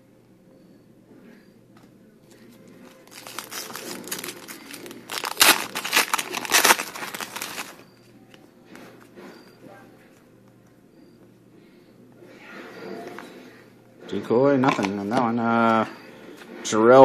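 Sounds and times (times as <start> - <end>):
foil pack crinkling and tearing: 2.8 - 7.8.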